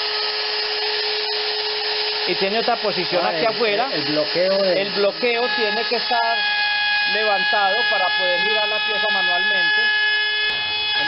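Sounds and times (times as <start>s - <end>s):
router whining: 0.0s - 11.0s.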